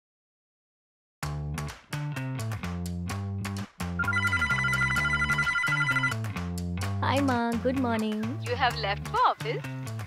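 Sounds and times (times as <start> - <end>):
phone ringtone trilling: 4.0 - 6.2
soft background music: 4.0 - 10.0.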